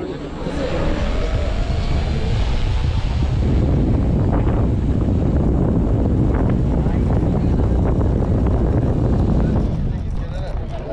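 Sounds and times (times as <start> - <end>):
faint rising tone: 0.0 - 4.1
wind buffeting microphone: 0.0 - 10.9
faint voices of onlookers: 6.5 - 10.9.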